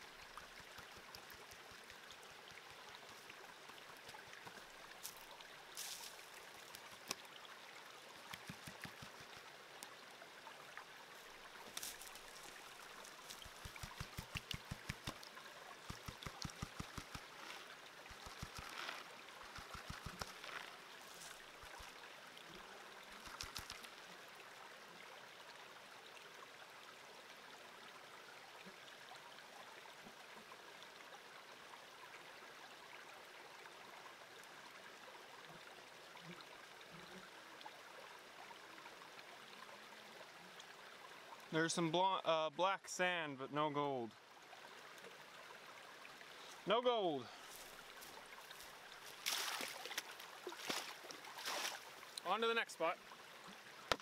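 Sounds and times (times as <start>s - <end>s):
creek trickling: 0.0s - 54.0s.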